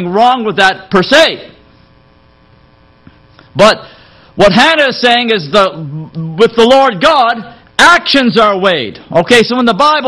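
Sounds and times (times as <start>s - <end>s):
man speaking: 0.0s - 1.6s, 3.6s - 10.0s
faint mains hum: 0.0s - 10.0s.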